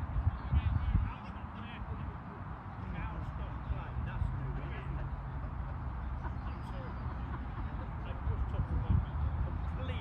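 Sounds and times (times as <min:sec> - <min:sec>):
wind rumbling on microphone: 0:00.0 - 0:02.2, 0:08.0 - 0:10.0
onlookers chatting: 0:00.0 - 0:10.0.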